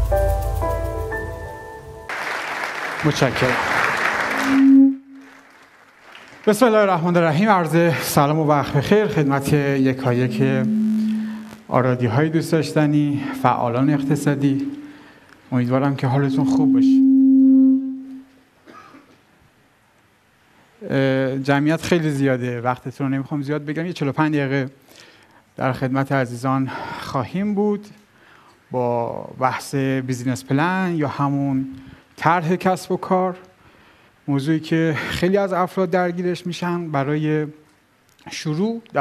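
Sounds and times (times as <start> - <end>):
intro music: 0.0 - 2.1, 8.5 - 18.2
audience applauding: 2.1 - 7.2
person speaking: 6.5 - 17.1
steady low tone: 8.0 - 18.3.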